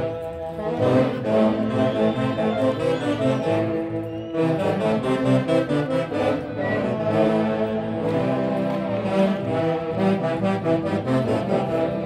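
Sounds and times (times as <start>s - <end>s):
brass band playing dance music: 0.0s - 12.0s.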